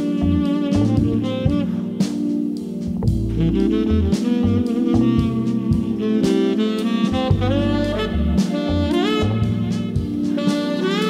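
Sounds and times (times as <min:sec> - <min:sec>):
bass and drums: 0:00.0 - 0:11.0
jazz saxophone melody: 0:00.0 - 0:11.0.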